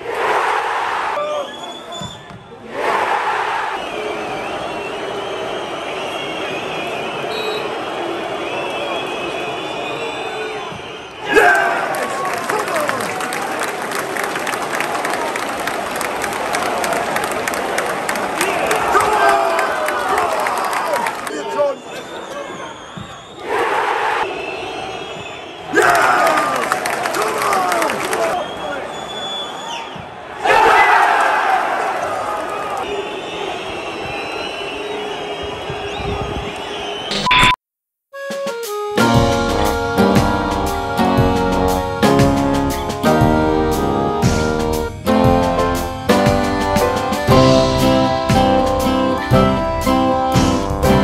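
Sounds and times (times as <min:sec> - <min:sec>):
crowd roaring: 0:00.0 - 0:01.5, 0:02.6 - 0:37.1
stadium crowd shouting and chanting: 0:00.0 - 0:37.2
short electronic beep: 0:37.1 - 0:37.6.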